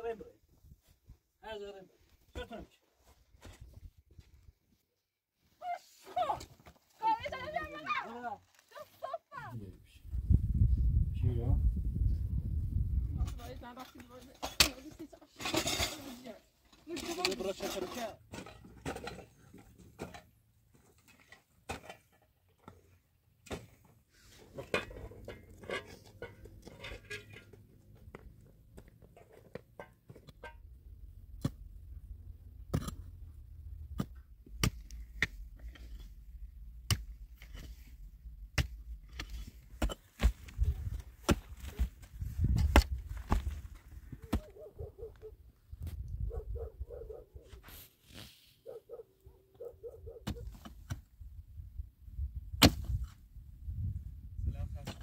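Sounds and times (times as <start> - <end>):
pick striking stony earth: 31.3 - 31.8, 32.6 - 33.1, 33.9 - 44.6, 52.4 - 53.2.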